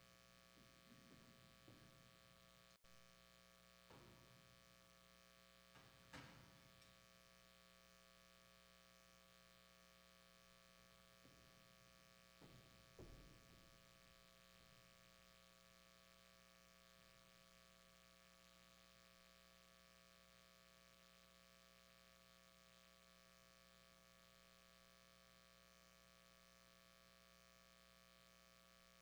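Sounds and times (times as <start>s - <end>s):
steady electrical hum: 0.0s - 29.0s
faint knocks: 12.4s - 13.8s.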